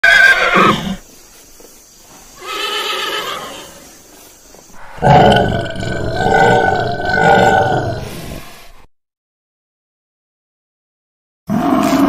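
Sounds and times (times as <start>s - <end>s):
horse neighing: 0.0s - 1.0s, 2.4s - 3.8s.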